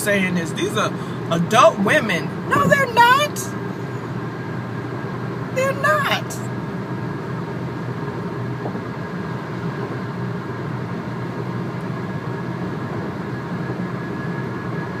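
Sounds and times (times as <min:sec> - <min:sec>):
car cabin rumble: 0:01.1 - 0:13.9.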